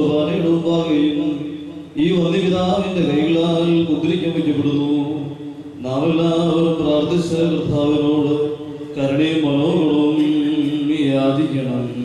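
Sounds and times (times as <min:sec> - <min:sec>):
liturgical chanting: 0:00.0 - 0:12.0.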